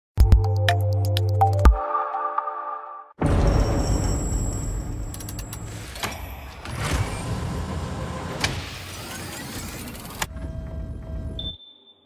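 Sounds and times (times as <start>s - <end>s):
sharp mechanical clicks: 5.1s - 7.0s.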